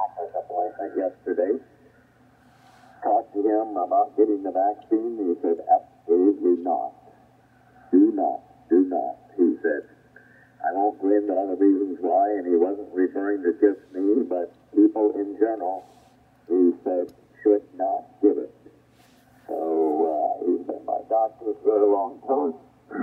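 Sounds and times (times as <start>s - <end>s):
steady low hum: 0.0s - 23.0s
thin radio voice: 10.6s - 18.5s, 19.4s - 23.0s.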